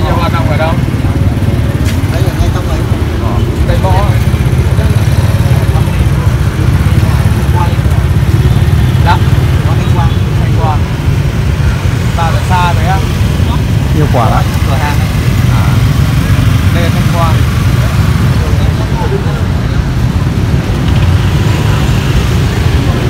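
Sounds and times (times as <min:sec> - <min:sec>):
motorbike and car traffic: 0:00.0 - 0:23.0
voices: 0:00.0 - 0:23.0.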